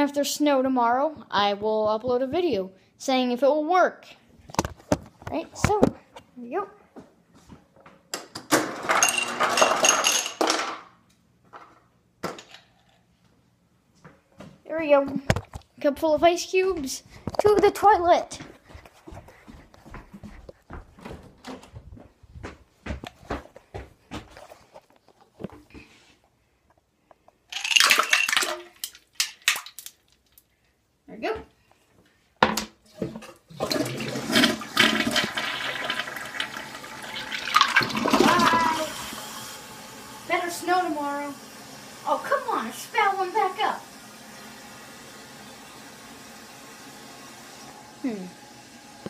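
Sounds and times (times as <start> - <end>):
ice cubes clattering into cup: 8.6 - 10.8, 27.5 - 30.0, 33.6 - 38.8
ice cubes clinking: 8.8 - 10.8, 27.5 - 30.4.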